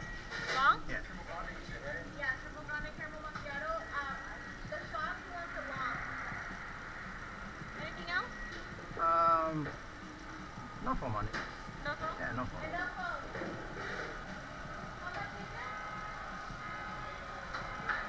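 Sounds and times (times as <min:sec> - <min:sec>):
indistinct voices talking: 0:01.5 - 0:09.8, 0:10.6 - 0:18.0.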